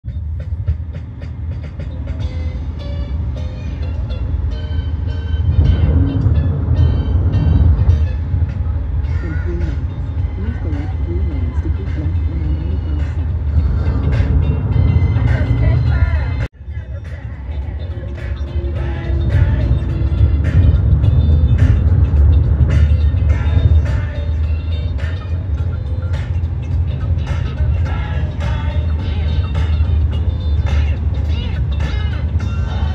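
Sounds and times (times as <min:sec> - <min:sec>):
car road and engine rumble: 0:00.0 - 0:32.9
music playing: 0:00.0 - 0:32.9.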